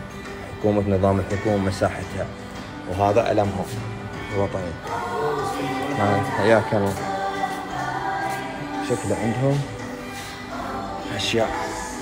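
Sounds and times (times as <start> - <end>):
choir singing sustained chords: 3.8 - 12.0.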